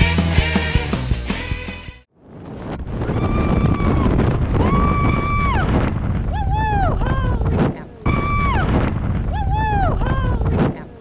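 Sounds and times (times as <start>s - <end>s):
wind rushing over microphone: 2.2s - 10.1s.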